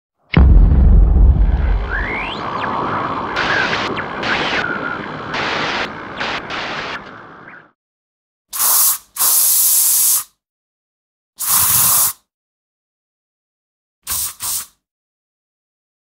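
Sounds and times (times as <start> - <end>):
rising whoosh: 0.4 - 5.0
rumble: 0.4 - 7.4
spraying hiss bursts: 8.6 - 10.2, 14.1 - 14.7.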